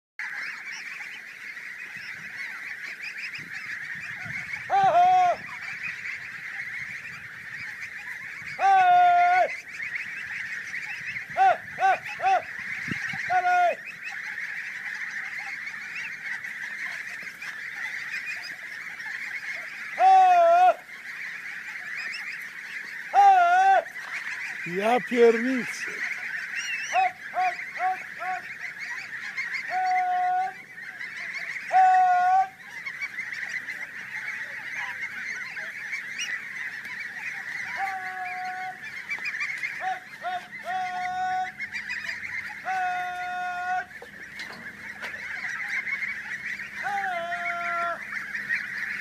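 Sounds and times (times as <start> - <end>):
flock of geese honking: 0.2 - 49.0
loud single goose honks: 34.7 - 49.0.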